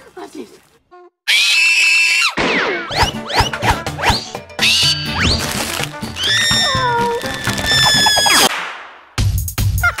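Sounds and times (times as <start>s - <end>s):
high-pitched cartoon scream: 1.3s - 2.4s, 6.2s - 8.5s.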